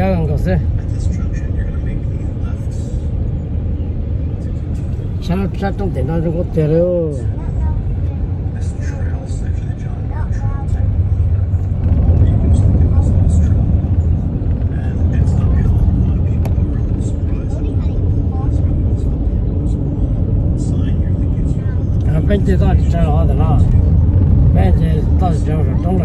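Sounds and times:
car cabin road noise: 0:00.0 - 0:26.0.

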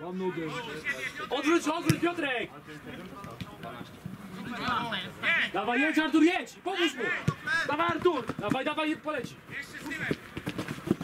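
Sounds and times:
players shouting: 0:00.2 - 0:03.3, 0:04.2 - 0:10.4
boots kicking ball: 0:07.3 - 0:11.0.

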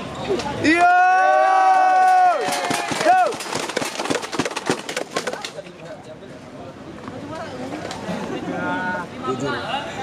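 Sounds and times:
spectators clapping: 0:01.9 - 0:05.5.

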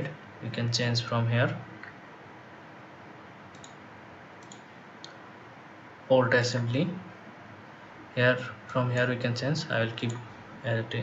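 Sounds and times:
background hiss: 0:00.0 - 0:11.0
computer mouse clicks: 0:03.5 - 0:03.8, 0:04.4 - 0:05.2.

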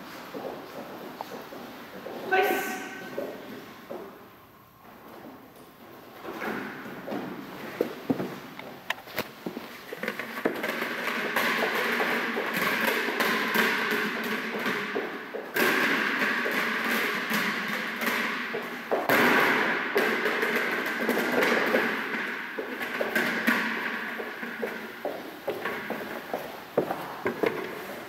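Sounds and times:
person running: 0:00.0 - 0:02.3, 0:06.8 - 0:19.2, 0:19.9 - 0:28.0
rubber ball bouncing: 0:09.5 - 0:26.1.

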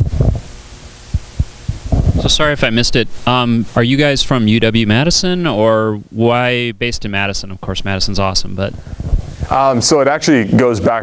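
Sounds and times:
microphone handling thumps: 0:00.0 - 0:03.2, 0:08.4 - 0:09.7.

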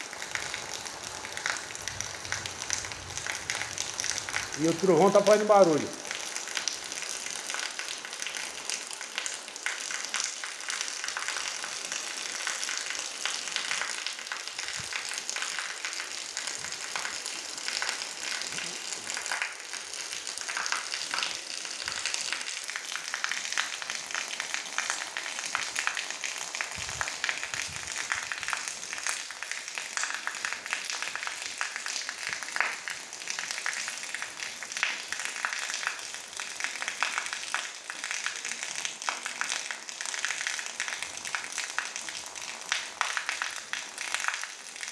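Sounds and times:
steady rain on ground: 0:00.0 - 0:44.9
water pouring onto wet sand: 0:00.0 - 0:44.9.

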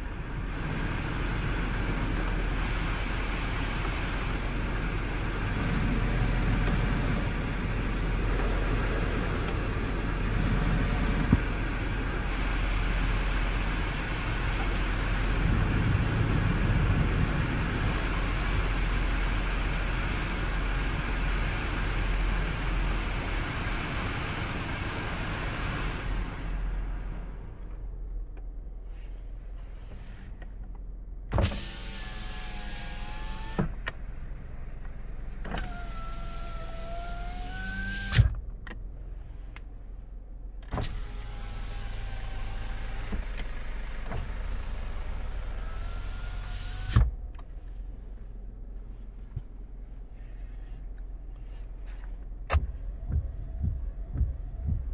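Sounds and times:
heater blower fan: 0:00.0 - 0:29.0, 0:31.3 - 0:54.9
power window motor whining: 0:01.3 - 0:26.6, 0:31.3 - 0:34.0, 0:35.3 - 0:38.4, 0:40.7 - 0:47.3, 0:52.4 - 0:54.9.

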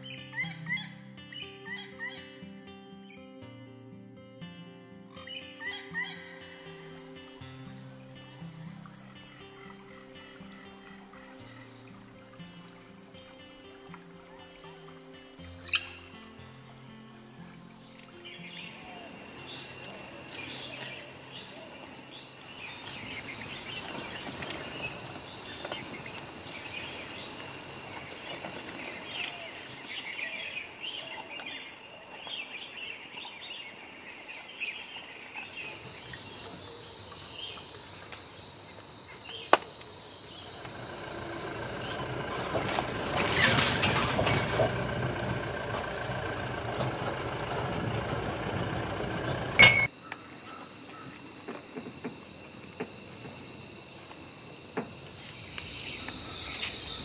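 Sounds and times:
birds chirping: 0:00.0 - 0:42.8, 0:55.1 - 0:57.0
insects droning: 0:00.0 - 0:57.0
vehicle engine rumbling: 0:40.3 - 0:49.9.

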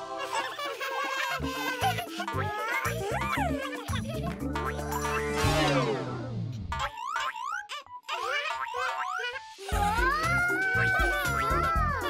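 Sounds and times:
cartoon boing sounds: 0:06.7 - 0:07.7.

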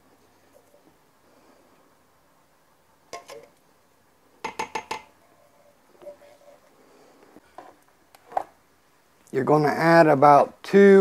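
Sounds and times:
metal can knocking on pot rim: 0:04.4 - 0:05.1.

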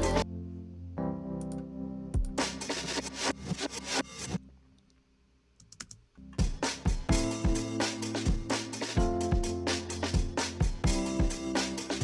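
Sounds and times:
pop song drums bass and keys: 0:00.0 - 0:00.2, 0:06.4 - 0:12.0.

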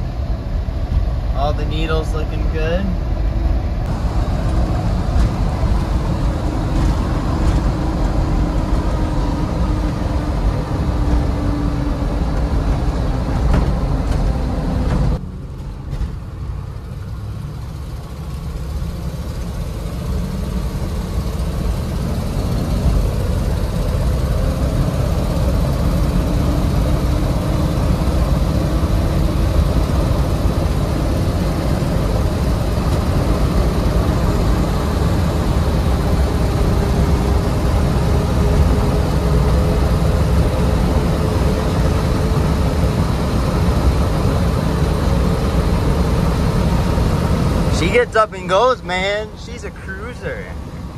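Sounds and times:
road noise: 0:00.0 - 0:50.9
car engine accelerating: 0:03.8 - 0:50.9.

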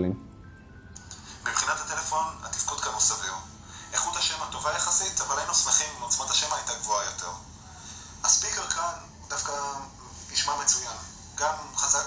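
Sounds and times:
man talking through small speaker: 0:00.0 - 0:00.2.

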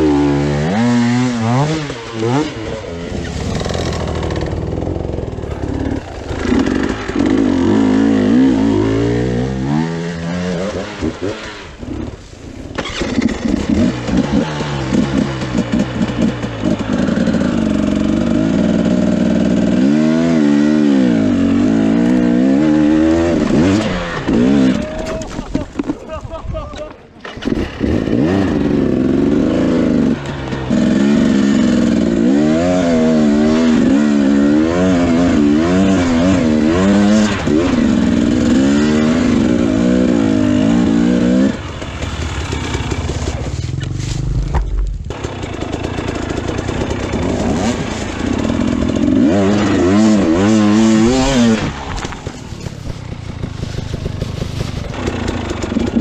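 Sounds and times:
motorcycle engine revving: 0:00.0 - 0:25.6, 0:27.2 - 0:56.0.

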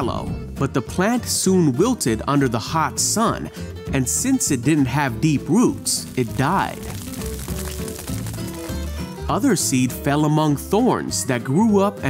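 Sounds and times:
instrumental music with bass: 0:00.0 - 0:12.0.

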